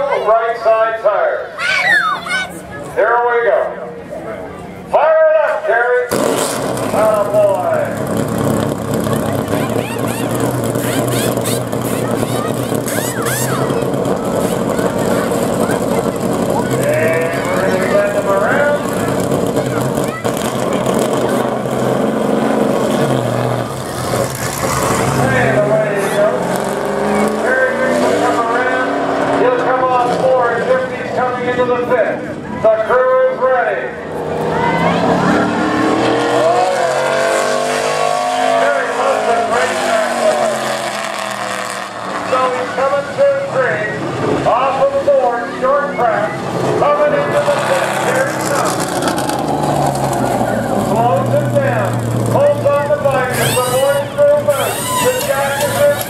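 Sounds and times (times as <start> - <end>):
race car engine revving past: 6.1 - 32.3, 34.0 - 56.0.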